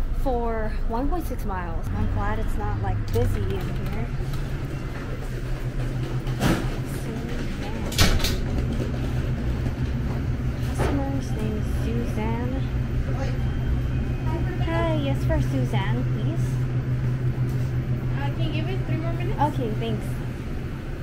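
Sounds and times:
steady low hum: 0.0s - 21.0s
faint staff voices: 10.7s - 16.7s.

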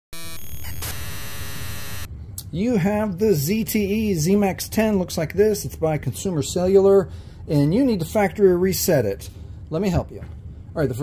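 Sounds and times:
brief buzzy tone: 0.1s - 2.1s.

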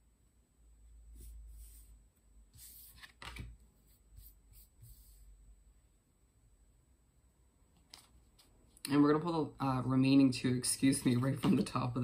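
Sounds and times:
tarot cards rustling and sliding: 2.6s - 5.2s, 7.8s - 8.8s.

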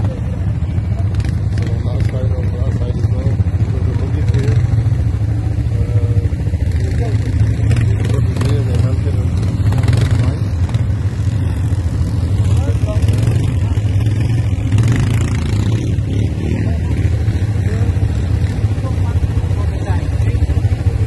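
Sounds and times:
quad bike engine idling: 0.0s - 21.0s.

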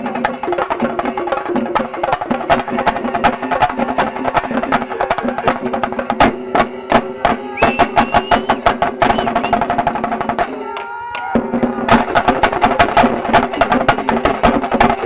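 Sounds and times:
drums beaten fast with sticks: 0.0s - 15.0s
high whistle: 7.5s - 9.7s.

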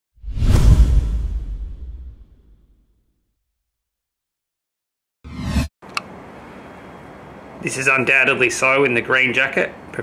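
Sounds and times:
whoosh with deep rumble: 0.2s - 2.8s.

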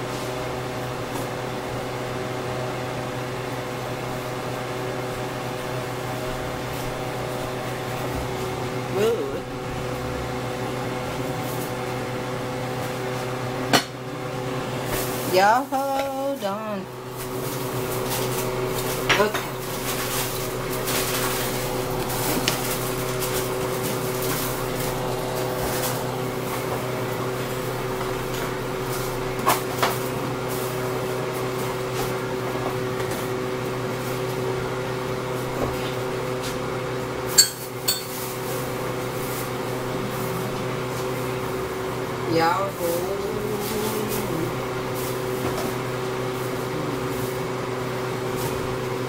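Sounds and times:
kitchen appliance humming: 0.0s - 49.0s
pots and utensils clinking: 37.3s - 38.4s.

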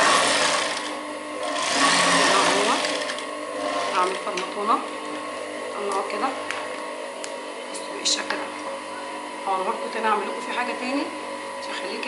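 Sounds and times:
sewing machine running: 0.0s - 4.4s.

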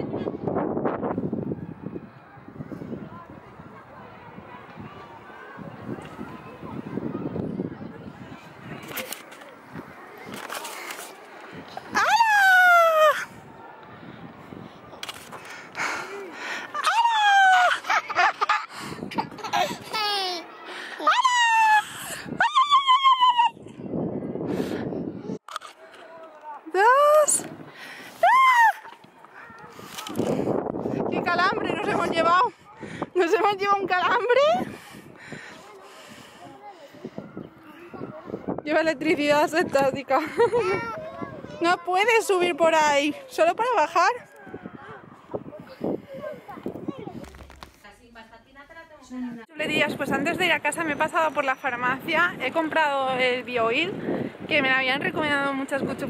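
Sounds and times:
wind buffeting microphone: 0.0s - 20.2s, 21.2s - 25.4s, 26.6s - 48.0s, 48.7s - 56.0s
camera handling rustle: 8.8s - 11.6s, 15.0s - 15.5s, 25.4s - 26.6s, 29.8s - 30.4s, 47.1s - 47.9s
person squealing excitedly: 11.9s - 13.2s, 16.8s - 17.8s, 28.2s - 28.8s.

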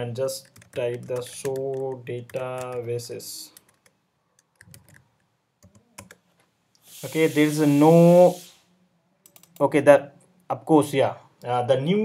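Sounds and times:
faint keyboard keystrokes: 0.4s - 2.9s.

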